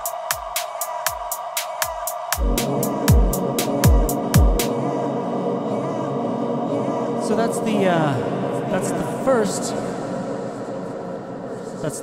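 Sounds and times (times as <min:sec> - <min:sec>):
man's voice: 0:00.0 - 0:10.4, 0:11.6 - 0:12.0
dense processed wash with held tones: 0:00.0 - 0:12.0.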